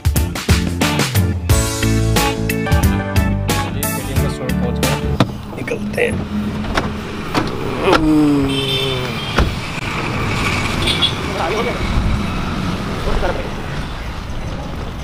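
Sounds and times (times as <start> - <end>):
road traffic: 0.0 - 15.0
voices: 7.4 - 9.5.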